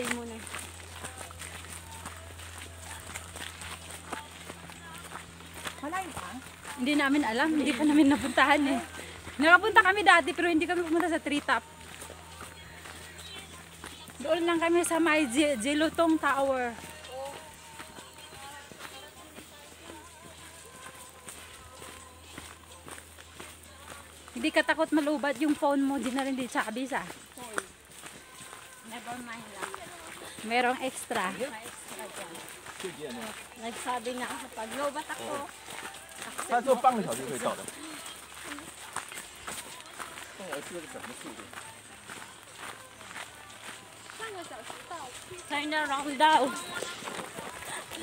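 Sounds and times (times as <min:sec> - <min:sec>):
footsteps on dirt trail: 0:00.0 - 0:48.0.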